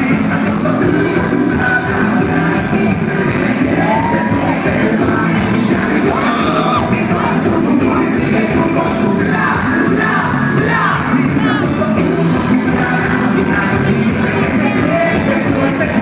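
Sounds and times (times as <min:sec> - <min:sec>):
live pop band with singer: 0:00.0 - 0:16.0
crowd whoops: 0:03.7 - 0:04.7, 0:06.1 - 0:06.9.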